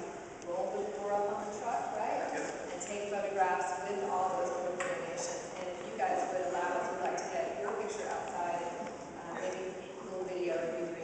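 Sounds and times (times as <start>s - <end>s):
woman talking into a microphone: 0.5s - 11.0s.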